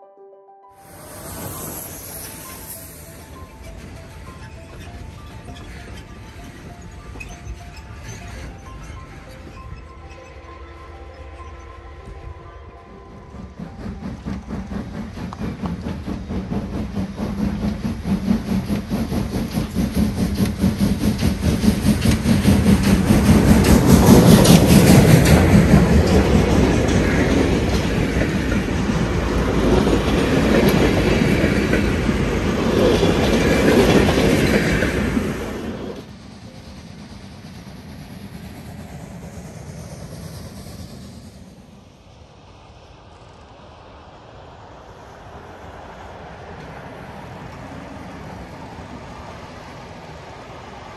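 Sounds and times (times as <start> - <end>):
passing train rumble: 0.6 - 50.9
wheels clacking over rail joints: 1.0 - 11.8, 13.1 - 40.2.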